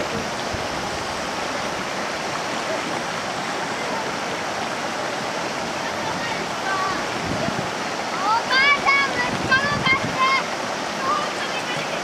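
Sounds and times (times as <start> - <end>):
river water rushing over rocks: 0.0 - 12.0.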